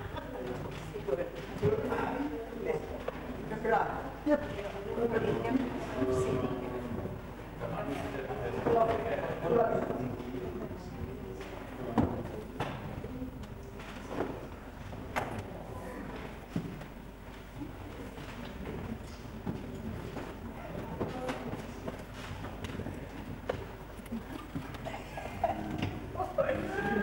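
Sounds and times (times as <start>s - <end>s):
audience murmuring: 0.0s - 16.7s, 17.4s - 27.0s.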